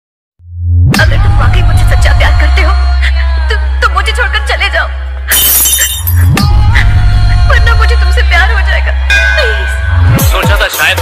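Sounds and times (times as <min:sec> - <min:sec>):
music with heavy bass: 0:00.6 - 0:03.0, 0:06.0 - 0:11.0
glass shattering: 0:05.3 - 0:06.4.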